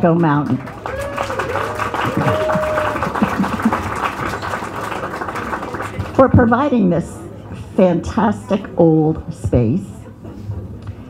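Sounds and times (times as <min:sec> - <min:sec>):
audience clapping: 0:00.0 - 0:06.5.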